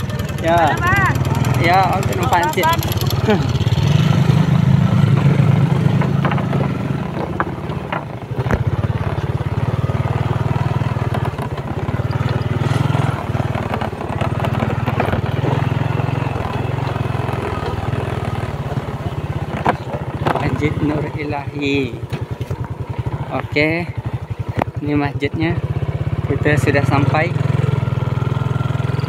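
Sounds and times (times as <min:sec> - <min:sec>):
small motorcycle engine running: 0:00.0 - 0:29.0.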